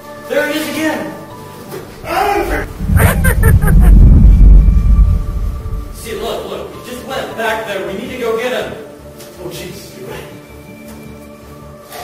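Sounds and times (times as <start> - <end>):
deep rumbling horror sting: 2.0 - 6.4.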